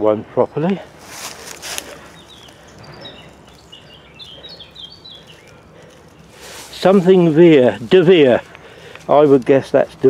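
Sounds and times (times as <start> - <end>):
small bird chirping: 1.2 - 9.2.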